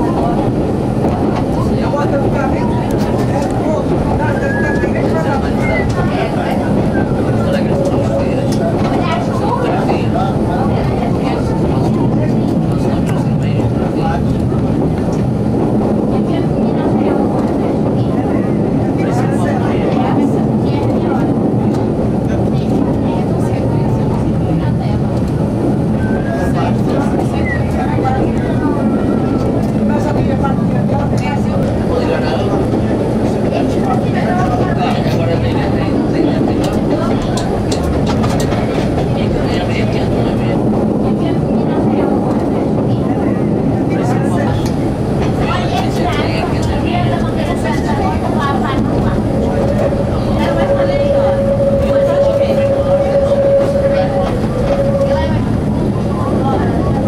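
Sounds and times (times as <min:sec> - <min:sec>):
train wheels rumbling on rails: 0:00.0 - 0:57.0
diesel engine drone: 0:48.0 - 0:57.0.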